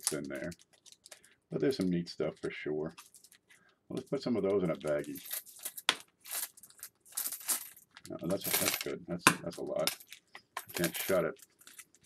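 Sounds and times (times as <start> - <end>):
coins clinking into plastic bag: 4.9 - 8.9, 9.7 - 12.0.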